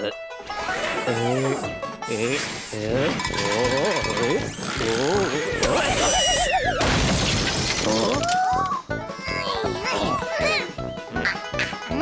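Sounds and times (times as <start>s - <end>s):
background music: 0.0s - 12.0s
cartoon crash with shattering: 5.7s - 8.2s.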